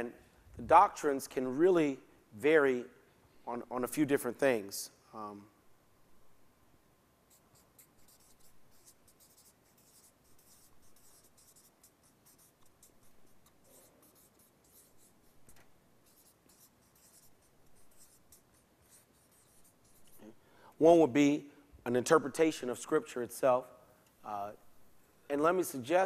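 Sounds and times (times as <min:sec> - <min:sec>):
marker scratching on paper: 0:07.3 - 0:20.4.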